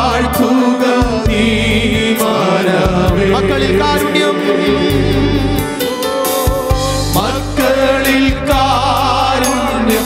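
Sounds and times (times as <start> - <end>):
keyboard accompaniment: 0.0 - 10.0
male group singing: 0.0 - 10.0
low bass line: 1.0 - 2.2, 2.9 - 5.9, 6.5 - 10.0.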